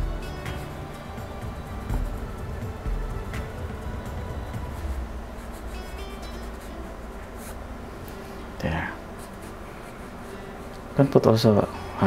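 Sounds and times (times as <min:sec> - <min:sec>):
soft background music: 0:00.0 - 0:12.0
steady low hum: 0:00.0 - 0:12.0.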